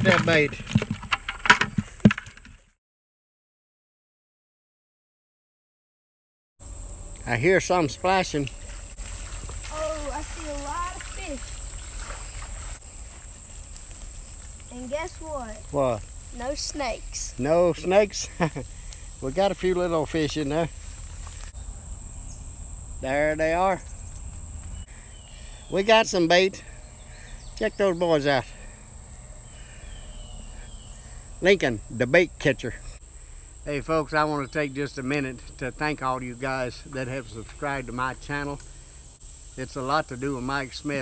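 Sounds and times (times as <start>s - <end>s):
insects droning: 0.0s - 2.4s, 6.6s - 41.0s
fish flopping in plastic bucket: 0.0s - 2.6s.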